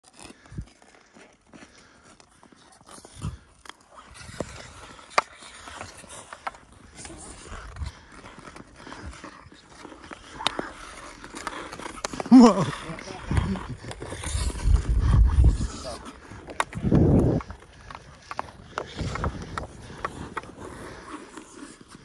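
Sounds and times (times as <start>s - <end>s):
ice skates scraping on ice: 0.0s - 22.0s
hockey sticks hitting puck: 4.1s - 22.0s.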